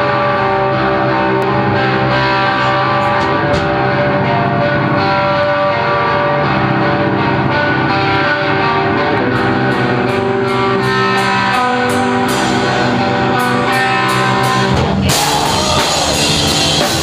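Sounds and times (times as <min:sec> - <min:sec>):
distorted electric guitar chords: 0:00.0 - 0:17.0
drums and cymbals: 0:10.2 - 0:17.0.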